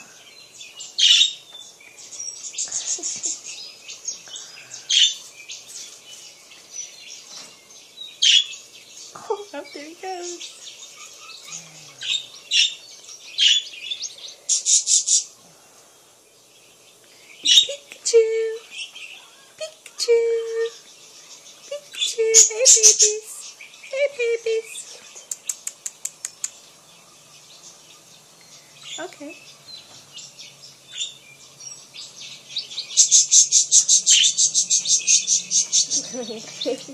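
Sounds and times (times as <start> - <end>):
budgerigars chirping and warbling: 0.0 - 15.4, 16.1 - 36.9.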